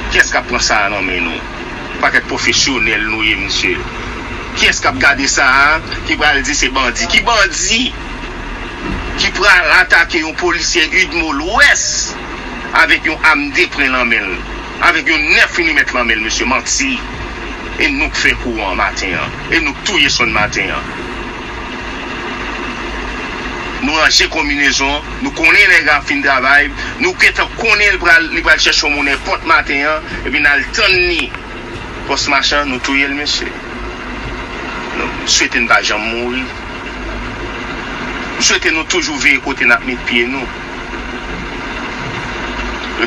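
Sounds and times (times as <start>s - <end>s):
engine running steadily: 0.0s - 43.0s.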